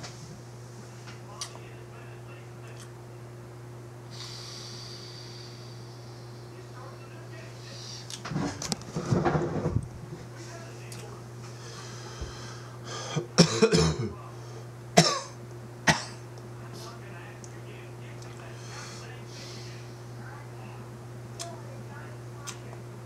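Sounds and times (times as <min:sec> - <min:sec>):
low steady hum: 0:00.0 - 0:23.0
man coughing: 0:12.9 - 0:14.2, 0:15.0 - 0:16.2.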